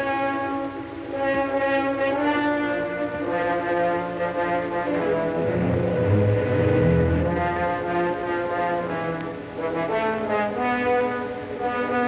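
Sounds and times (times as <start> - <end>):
brass sustained chords: 0.0 - 12.0
orchestral music: 4.6 - 9.1.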